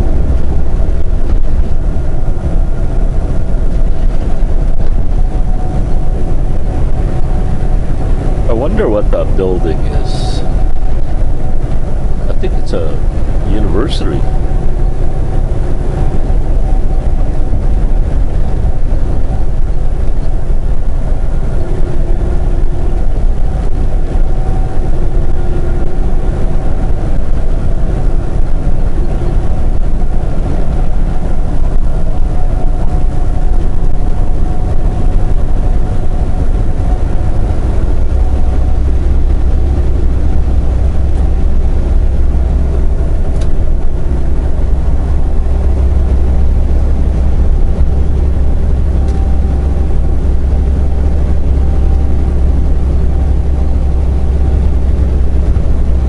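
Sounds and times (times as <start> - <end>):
truck engine and road noise: 0.0 - 56.0.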